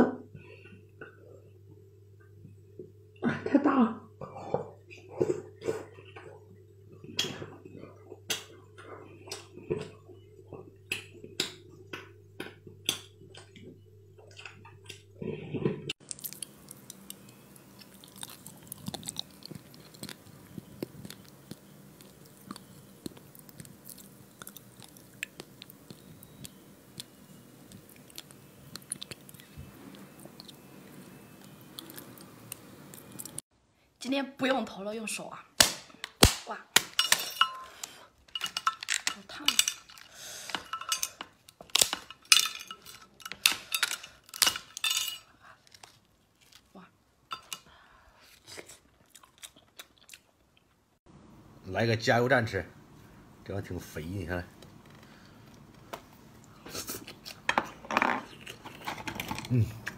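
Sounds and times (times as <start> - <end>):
low steady hum: 0.0 - 34.0, 51.1 - 59.9
chewing with wet mouth clicks: 16.0 - 33.4, 48.9 - 50.8.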